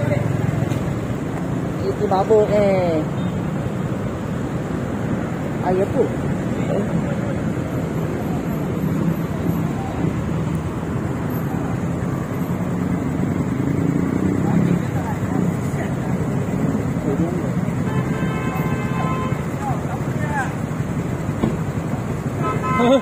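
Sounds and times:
idling engines and traffic: 0.0 - 23.0
people talking: 14.3 - 17.7.

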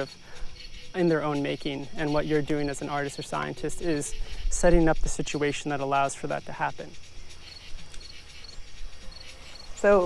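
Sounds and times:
cricket chirping: 0.0 - 10.0.

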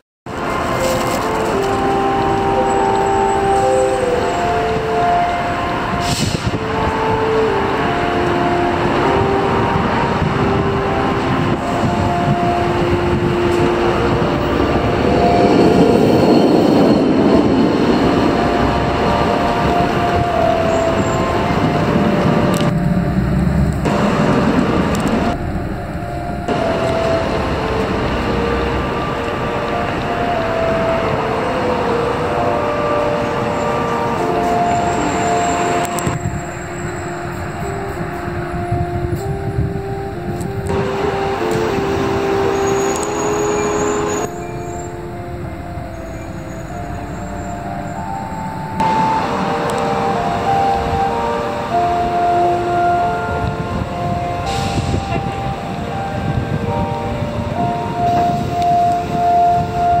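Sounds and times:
street traffic noise: 0.3 - 60.0
tune of held notes: 0.3 - 60.0.

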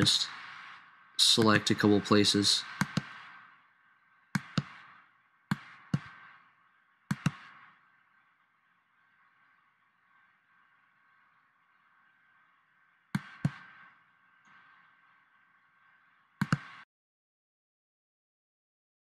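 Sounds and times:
faint steady hum: 0.0 - 16.8
computer mouse clicking: 2.8 - 3.3, 4.4 - 4.8, 5.5 - 6.2, 7.1 - 7.6, 13.2 - 13.7, 16.4 - 16.8.

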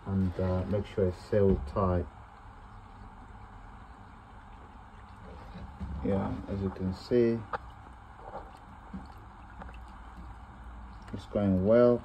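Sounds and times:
water trickling into a drain: 2.7 - 12.0.

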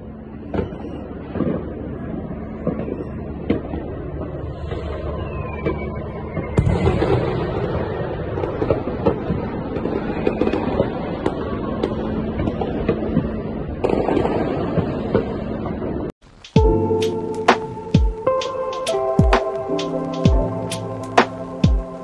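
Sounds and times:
distant fireworks rumble: 0.0 - 22.0
fireworks pops and cracks: 5.5 - 15.3.

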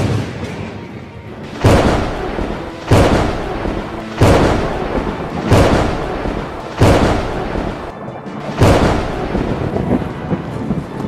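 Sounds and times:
low thunder rumble: 1.4 - 11.0.

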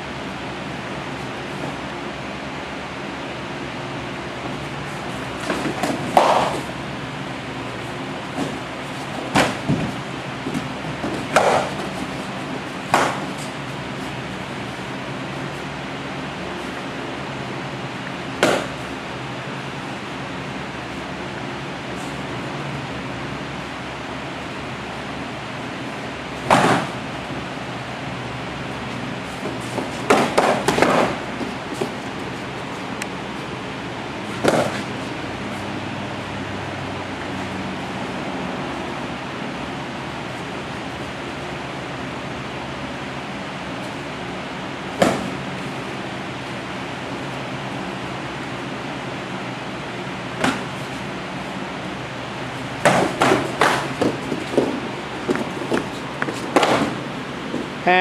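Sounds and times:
sparring sticks striking: 5.0 - 6.8, 7.8 - 14.2, 18.4 - 18.8, 29.4 - 32.4, 34.3 - 35.0, 50.4 - 51.1, 52.6 - 57.8.

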